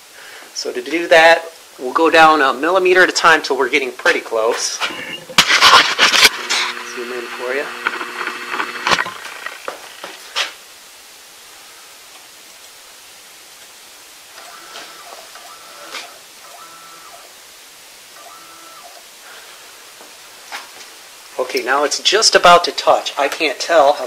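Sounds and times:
low hiss: 0.0s - 24.0s
stepper motor whining: 4.8s - 9.8s, 14.4s - 17.4s, 18.2s - 19.1s.

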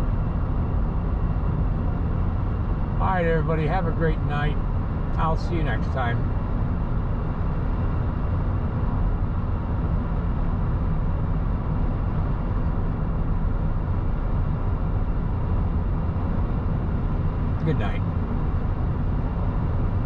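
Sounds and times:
car engine rumble: 0.0s - 20.0s
tyre road noise: 0.0s - 20.0s.

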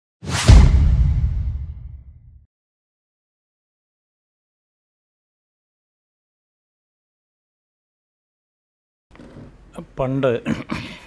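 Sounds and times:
whoosh: 0.2s - 2.4s
deep boom with low rumble: 0.4s - 2.4s.

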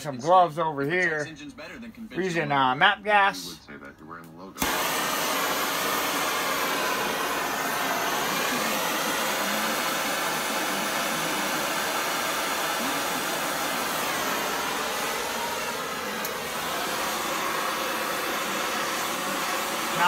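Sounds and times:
gas torch hissing: 4.6s - 20.0s.

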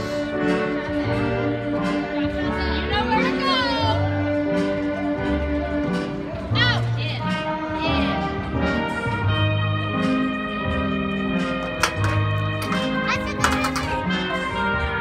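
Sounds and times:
instrumental music over speakers: 0.0s - 15.0s.

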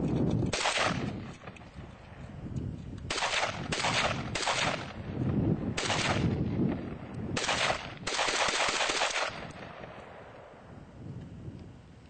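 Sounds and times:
rifle firing automatic bursts: 0.5s - 1.2s, 3.1s - 5.0s, 5.8s - 6.3s, 7.4s - 9.8s.

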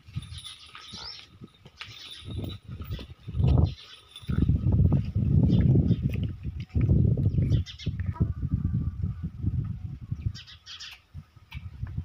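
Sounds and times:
small birds chirping: 0.3s - 4.4s, 6.8s - 8.2s, 10.2s - 11.1s.

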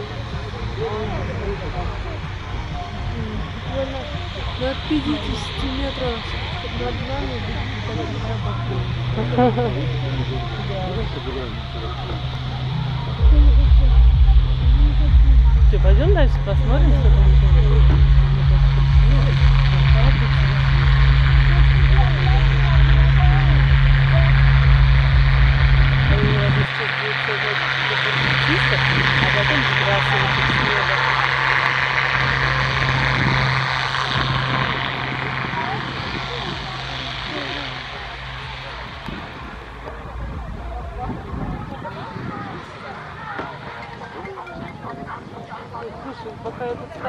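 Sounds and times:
faint voices: 0.0s - 47.0s
propeller aircraft engine drone: 0.0s - 47.0s.

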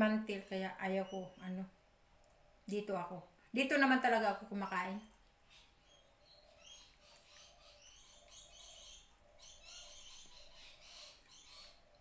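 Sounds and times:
faint birds chirping: 0.0s - 12.0s.

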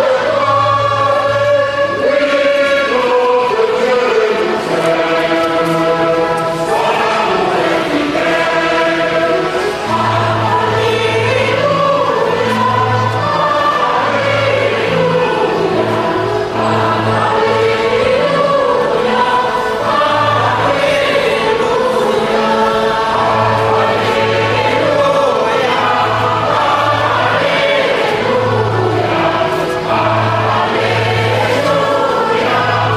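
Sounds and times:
choir singing a hymn: 0.0s - 32.9s.

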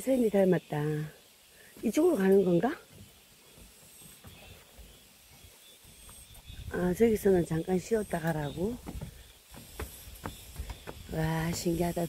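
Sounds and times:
low thumps from walking: 8.2s - 12.0s.

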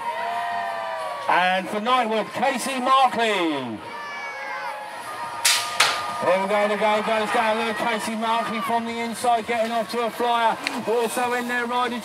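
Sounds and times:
metal gate banging down: 5.4s - 6.2s.

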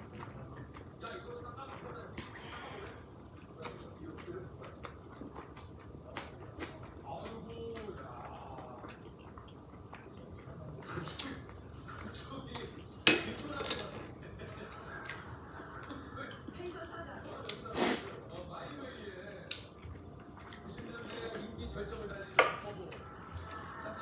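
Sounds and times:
chewing noodles: 0.0s - 24.0s.

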